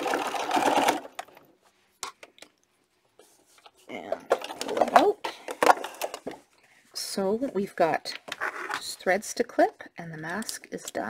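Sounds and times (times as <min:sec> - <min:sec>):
sewing machine stitching: 0:00.0 - 0:01.4.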